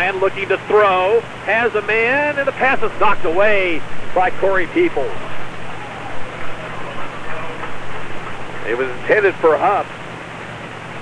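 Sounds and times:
crowd of many voices: 0.0 - 11.0
low electrical hum: 0.0 - 11.0.

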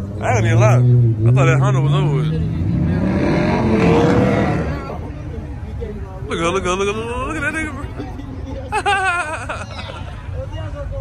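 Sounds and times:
car engine revving hard: 0.4 - 5.0.

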